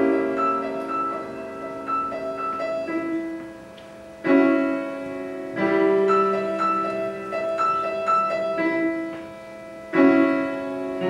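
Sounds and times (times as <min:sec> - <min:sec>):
loud piano chord: 0:00.0 - 0:11.0
piano repeated notes: 0:00.0 - 0:11.0.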